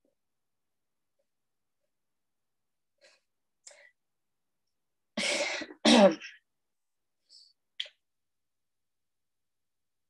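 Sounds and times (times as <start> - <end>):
person clearing throat: 5.7 - 6.4.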